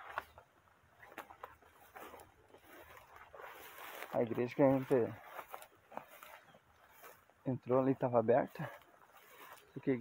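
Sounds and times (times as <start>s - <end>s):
rustling through tall weeds: 0.0s - 10.0s.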